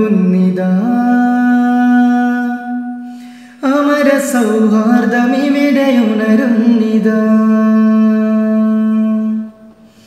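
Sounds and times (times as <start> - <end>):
man singing unaccompanied: 0.0 - 9.8.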